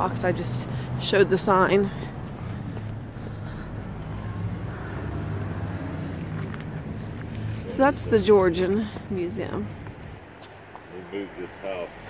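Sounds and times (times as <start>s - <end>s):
street noise: 0.0s - 12.0s
vehicle engine humming: 0.0s - 12.0s.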